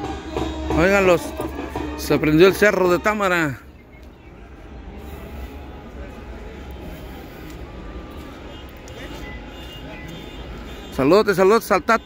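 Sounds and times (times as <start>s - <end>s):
distant voices: 0.0s - 12.0s
vehicle traffic: 0.0s - 12.0s.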